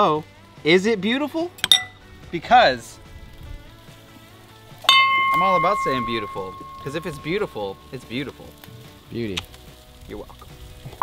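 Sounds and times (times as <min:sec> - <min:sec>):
faint background music: 0:00.0 - 0:11.0
bell-like ding: 0:04.9 - 0:07.6.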